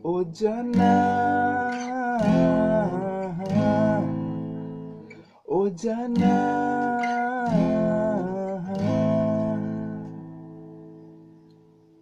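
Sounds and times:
acoustic guitar strumming chords: 0.0 - 11.9.

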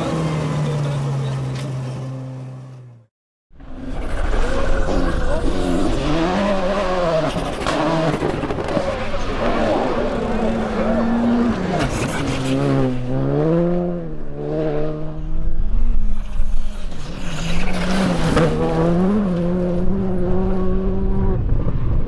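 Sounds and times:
rally car engine at high revs: 4.3 - 22.0.

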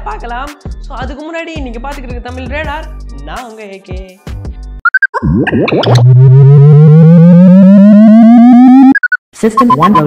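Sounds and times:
rising buzzy synth tone: 5.1 - 9.0
short electronic beeps: 8.4 - 10.0.

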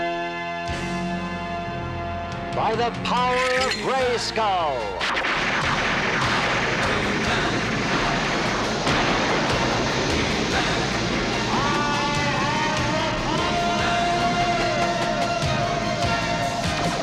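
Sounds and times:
rushing crackle of magical lightning: 5.0 - 17.0
dramatic orchestral music: 8.9 - 17.0.

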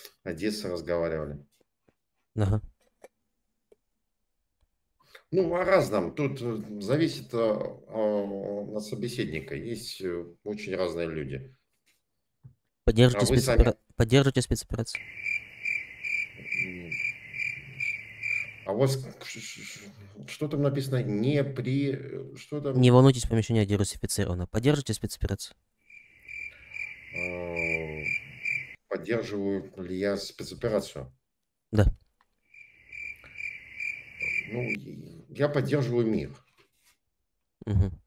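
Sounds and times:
high pulsing insect-like trill: 15.0 - 18.7, 25.9 - 28.8, 32.5 - 34.8.

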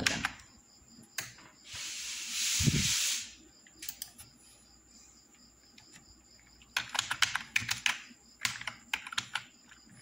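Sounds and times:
hissing rush of noise: 1.7 - 3.4.

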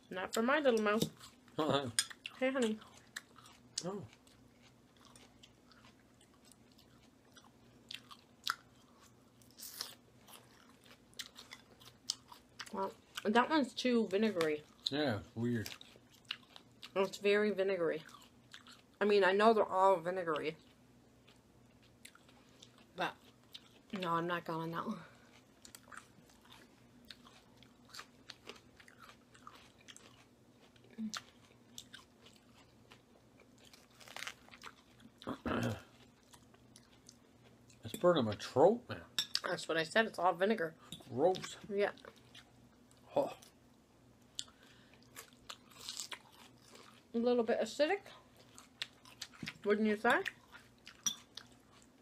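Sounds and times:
chewing with wet crunches: 0.4 - 13.4, 14.2 - 17.1, 18.0 - 19.0, 20.5 - 38.5, 44.2 - 47.2, 48.2 - 52.0
crisp chewing crunches: 25.2 - 37.8, 44.4 - 47.1
fork clinking: 51.0 - 51.3.

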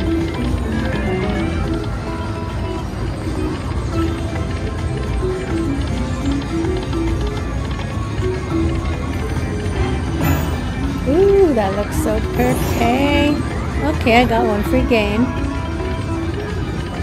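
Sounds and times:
slot machine bonus music: 0.0 - 17.0.

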